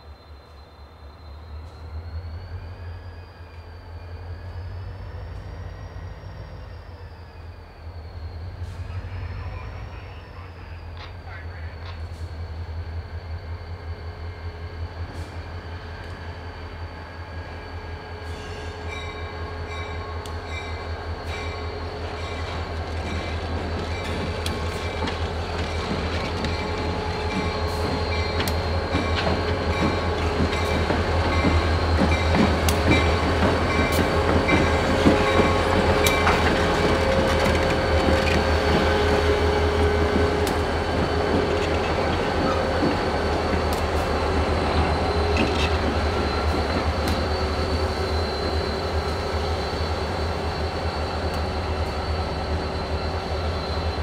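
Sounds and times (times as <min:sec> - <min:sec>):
diesel locomotive engine hum: 0:00.0 - 0:54.0
locomotive high whine: 0:00.0 - 0:54.0.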